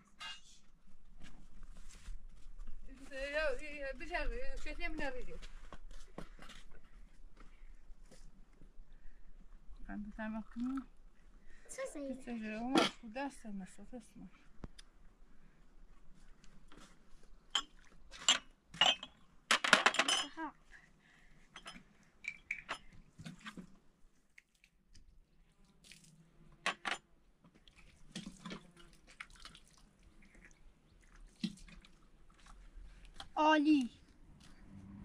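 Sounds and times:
ringing clatter of glasses: 0:18.3 - 0:20.4.

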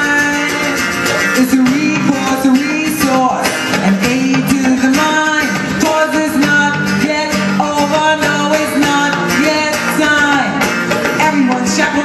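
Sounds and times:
electric guitar: 0:00.0 - 0:12.0
live band music: 0:00.0 - 0:12.0
person singing: 0:00.0 - 0:12.0.

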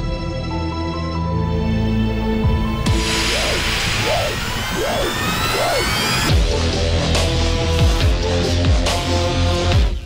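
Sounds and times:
synth tone sliding in pitch: 0:02.9 - 0:06.3.

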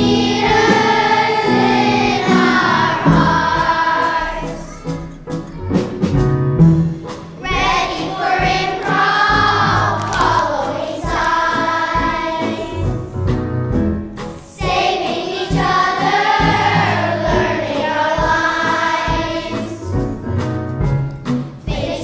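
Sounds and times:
children's choir singing: 0:00.0 - 0:05.1, 0:07.4 - 0:13.2, 0:14.4 - 0:20.1, 0:21.6 - 0:22.0.

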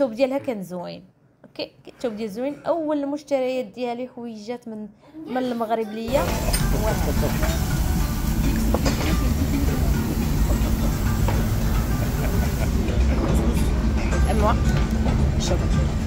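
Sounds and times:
indistinct voices: 0:06.1 - 0:16.0
music: 0:06.1 - 0:16.0.

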